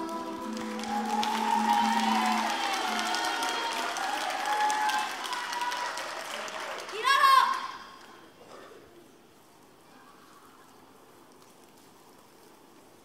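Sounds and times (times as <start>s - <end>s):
group singing held note: 0.0s - 3.5s
audience applause and cheers: 0.0s - 7.8s.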